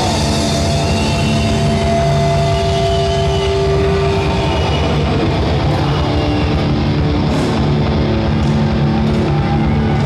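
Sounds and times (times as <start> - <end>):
distorted electric guitars: 0.0 - 10.0.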